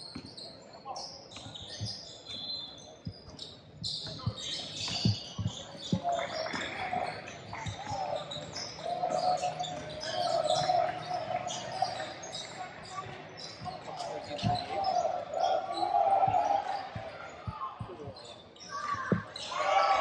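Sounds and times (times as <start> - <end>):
sneakers squeaking: 0.0 - 20.0
voices in echoing gym: 0.0 - 20.0
basketball bouncing on hardwood: 19.0 - 19.3.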